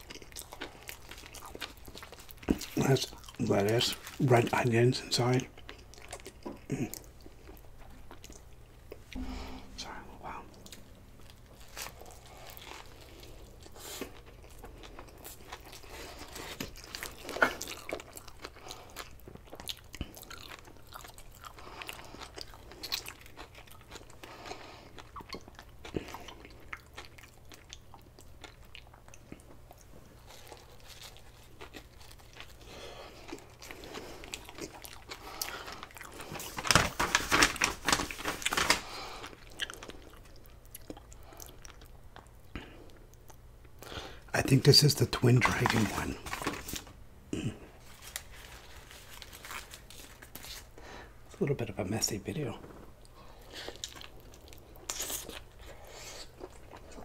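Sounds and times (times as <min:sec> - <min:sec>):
close chewing with wet clicks: 0:00.0 - 0:03.8, 0:05.5 - 0:09.0, 0:16.6 - 0:32.6, 0:39.3 - 0:43.8.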